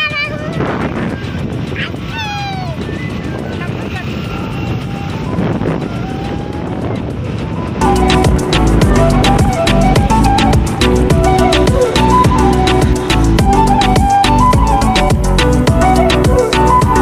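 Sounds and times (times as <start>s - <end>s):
child's voice: 0.0s - 5.4s
vehicle road and wind noise: 0.0s - 17.0s
background music with steady beat: 5.2s - 17.0s.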